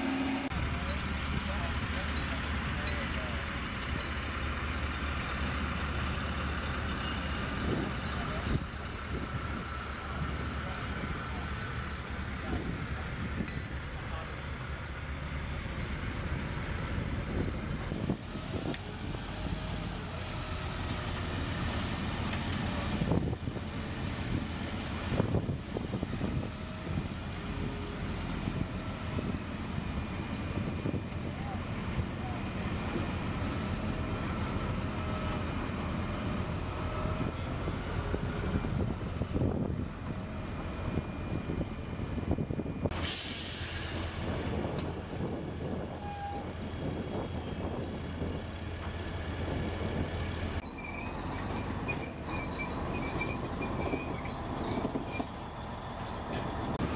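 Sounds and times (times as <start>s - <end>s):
truck diesel engines rumbling: 0.0s - 56.9s.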